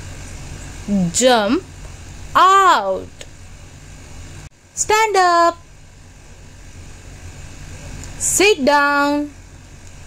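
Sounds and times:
low hum with faint hiss: 0:00.0 - 0:10.0.

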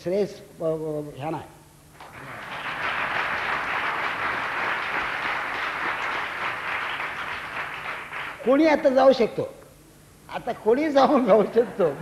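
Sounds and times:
audience applauding: 0:02.0 - 0:08.6.

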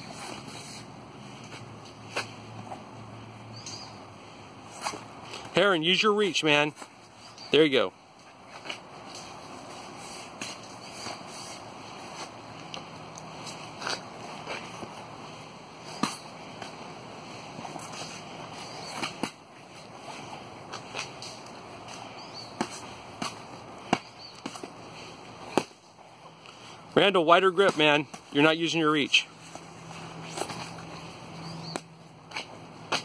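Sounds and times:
steady background hiss: 0:00.0 - 0:33.0.

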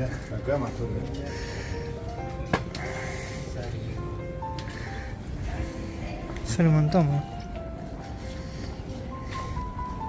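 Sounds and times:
background music of held notes: 0:00.0 - 0:10.0.

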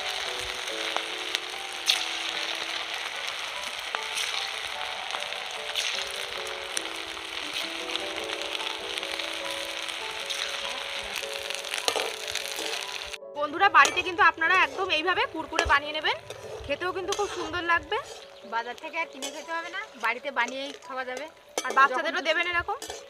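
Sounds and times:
batter sizzling in hot oil: 0:00.0 - 0:13.2, 0:13.8 - 0:23.0
slow melody of held notes: 0:00.0 - 0:22.3.

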